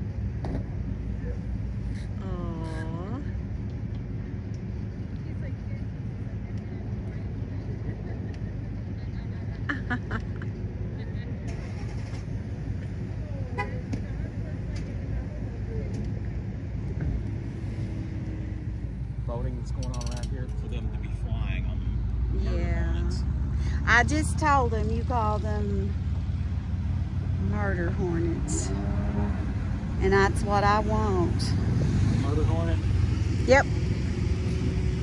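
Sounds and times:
steady low rumble: 0:00.0 - 0:35.0.

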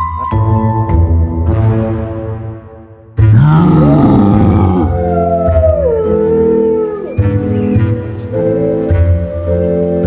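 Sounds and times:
eerie background music: 0:00.0 - 0:10.0
wolf howling: 0:03.4 - 0:07.3.

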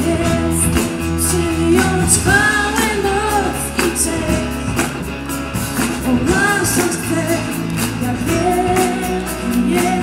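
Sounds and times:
drum beats: 0:00.0 - 0:10.0
lead singer singing: 0:00.0 - 0:10.0
worship band playing: 0:00.0 - 0:10.0.

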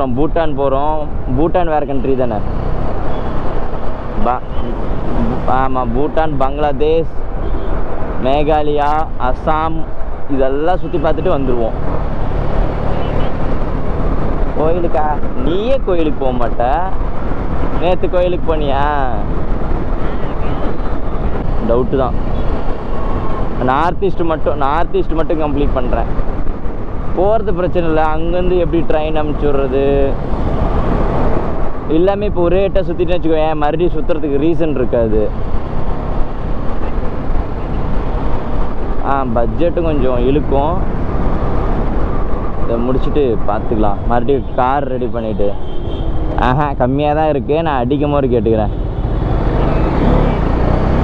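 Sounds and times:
wind rush while riding motorcycle: 0:24.6 - 0:29.4
motorcycle engine hum: 0:35.1 - 0:44.6.

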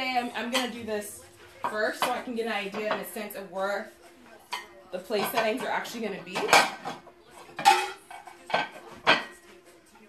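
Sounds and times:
dishes and cutlery clinking: 0:00.0 - 0:10.0.

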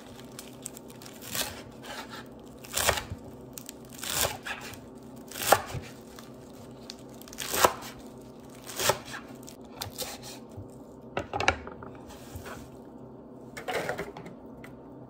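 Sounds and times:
knife chopping herbs on wooden board: 0:01.3 - 0:03.2, 0:05.4 - 0:06.0, 0:07.4 - 0:08.0.

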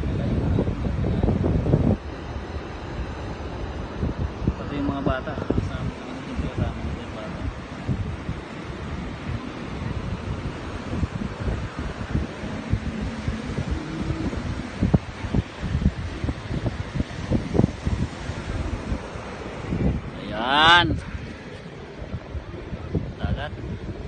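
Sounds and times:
wind buffeting microphone: 0:00.0 - 0:24.0.

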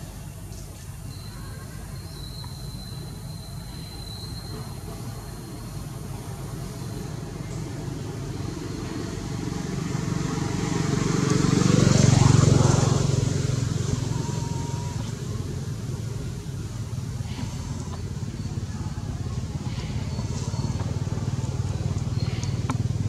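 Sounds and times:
motor vehicle driving past: 0:06.8 - 0:23.0.

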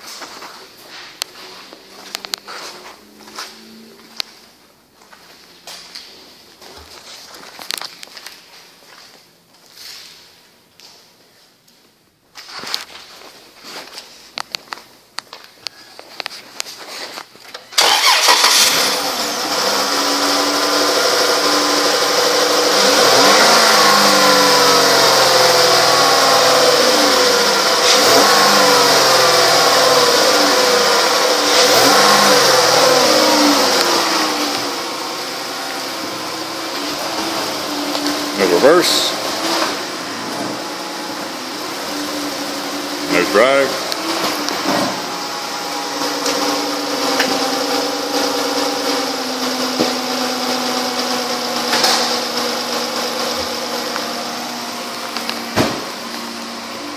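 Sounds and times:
car engine starting and running: 0:00.0 - 0:09.3, 0:12.5 - 0:56.9.

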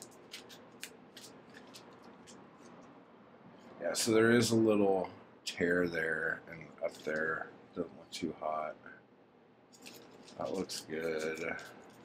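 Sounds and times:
book pages riffled: 0:09.8 - 0:12.0.

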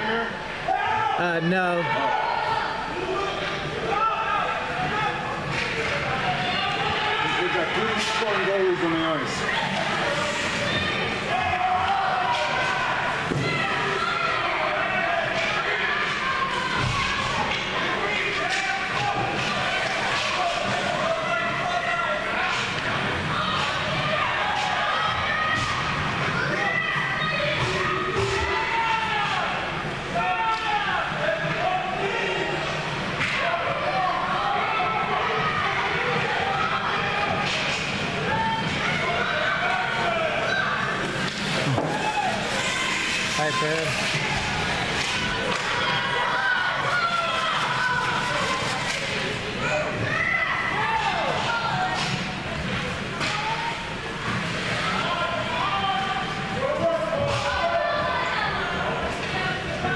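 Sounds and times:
spectators' voices and calls: 0:00.0 - 0:59.9.

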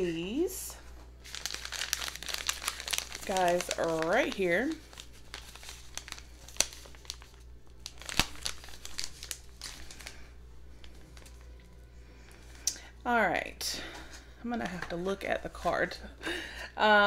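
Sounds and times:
packets crinkling and rustling: 0:00.8 - 0:11.8.

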